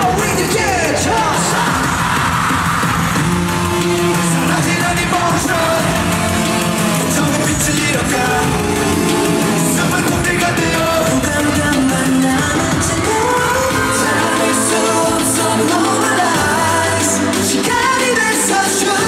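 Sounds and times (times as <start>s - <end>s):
person singing live: 0.0s - 19.0s
pop-rock backing track: 0.0s - 19.0s.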